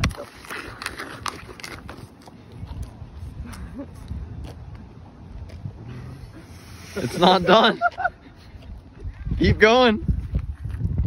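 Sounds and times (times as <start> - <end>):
apple being bitten and chewed: 0.0 - 6.6.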